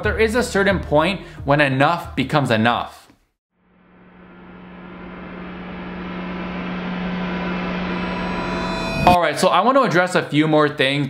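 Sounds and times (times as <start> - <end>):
drone hum with hiss: 3.7 - 9.2.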